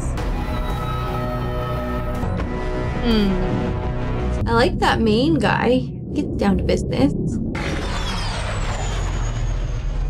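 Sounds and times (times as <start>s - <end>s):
deep rumble: 1.7s - 10.0s.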